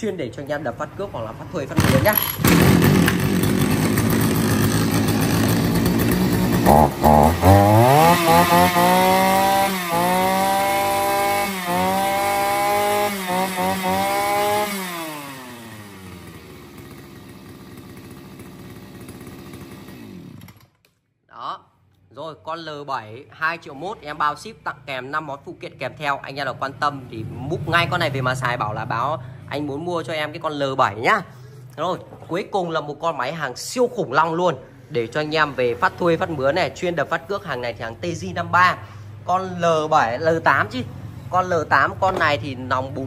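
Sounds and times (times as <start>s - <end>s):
brush cutter engine revving: 1.7s - 20.8s.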